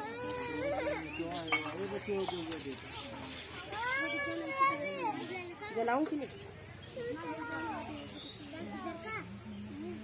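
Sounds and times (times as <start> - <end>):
women and children talking: 0.0 - 10.0.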